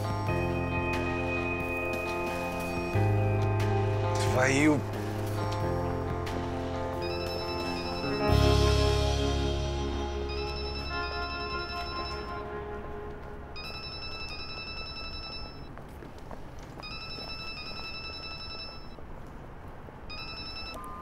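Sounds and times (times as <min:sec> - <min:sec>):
background music: 0:00.0 - 0:14.6
mobile phone ringtone: 0:06.9 - 0:08.8, 0:10.0 - 0:12.6, 0:13.5 - 0:15.7, 0:16.8 - 0:19.0, 0:20.1 - 0:21.0.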